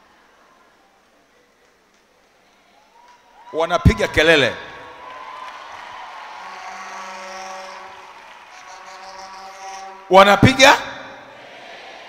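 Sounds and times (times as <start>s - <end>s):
congregation noise hiss: 0.0s - 6.7s, 10.0s - 12.0s.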